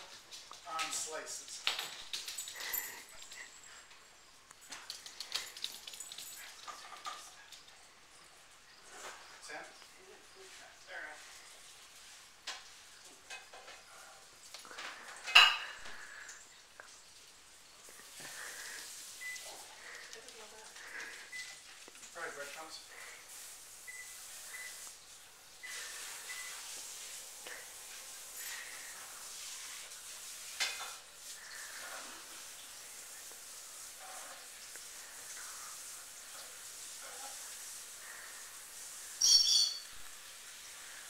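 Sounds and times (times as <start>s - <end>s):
dishes and cutlery clattering: 4.7s - 7.4s, 14.7s - 16.1s, 30.6s - 31.0s.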